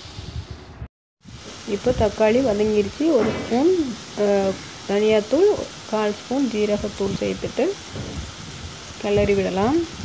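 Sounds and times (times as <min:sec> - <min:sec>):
masala sizzling in oil: 0:01.2 - 0:10.0.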